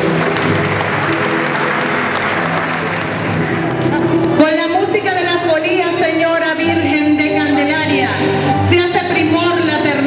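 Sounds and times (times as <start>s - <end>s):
congregation applauding: 0.0s - 4.4s
live band music: 0.0s - 5.1s.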